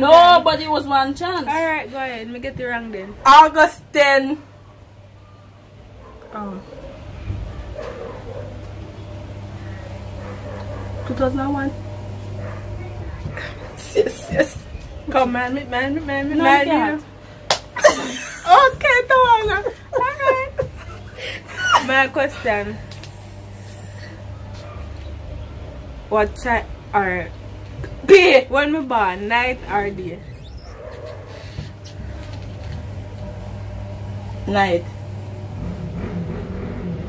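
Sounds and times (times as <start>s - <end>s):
faint wavering low hum: 0.0s - 37.0s
low steady rumble: 0.0s - 37.0s
sharp hand slap: 17.5s - 17.7s
laughter: 17.8s - 18.8s, 19.4s - 22.1s.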